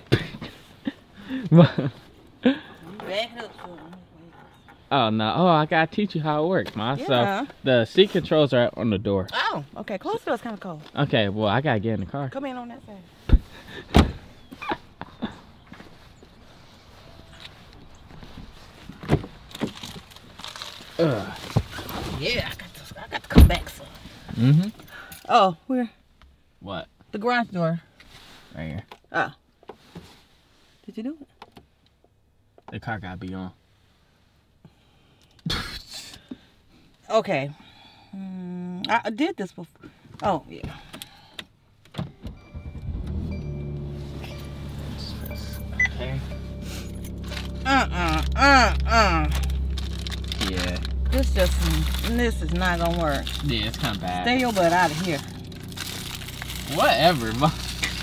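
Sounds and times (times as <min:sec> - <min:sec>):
car engine starting and idling: 0:42.1 - 0:58.0.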